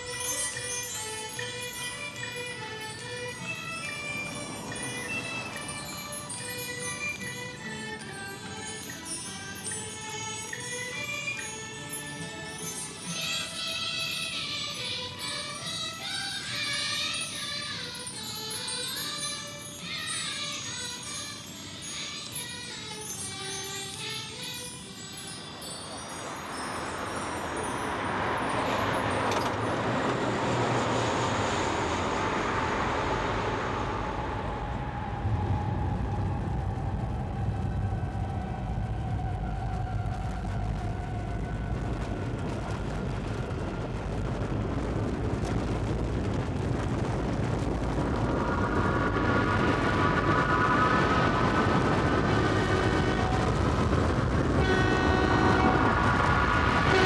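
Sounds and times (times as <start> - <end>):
train rumbling: 0.0 - 57.0
slowly falling tone: 25.3 - 57.0
train horn: 51.8 - 57.0.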